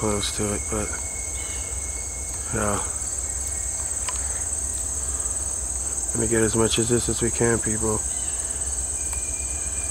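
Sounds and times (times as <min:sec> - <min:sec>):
insects chorus: 0:00.0 - 0:09.9.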